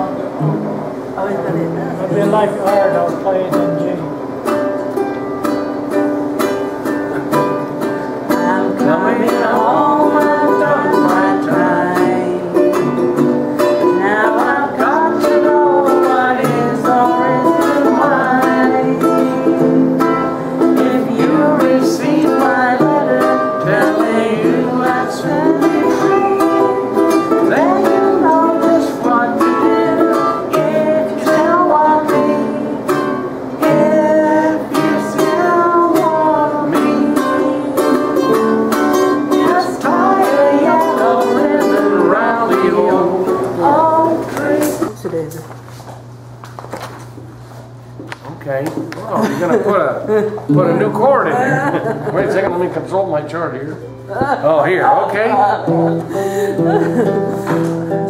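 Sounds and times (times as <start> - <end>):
ukulele: 0.0 - 45.0, 50.2 - 52.8, 55.3 - 58.0
strummed acoustic guitar: 0.0 - 45.7, 49.1 - 58.0
group of people singing: 8.3 - 45.0.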